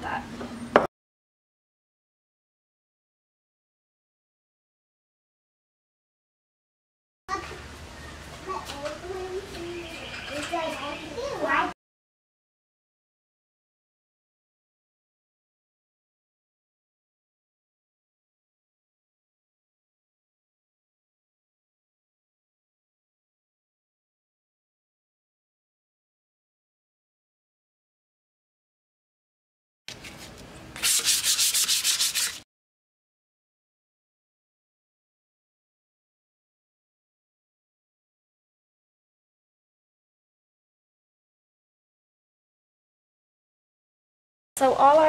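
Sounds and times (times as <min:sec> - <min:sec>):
sandpaper rubbing on wood: 0:30.8 - 0:32.4.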